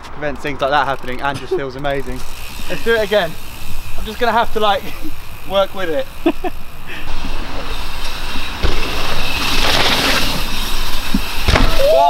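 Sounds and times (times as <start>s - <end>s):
tyres rolling over dirt: 7.2s - 12.0s
thump: 11.5s - 11.8s.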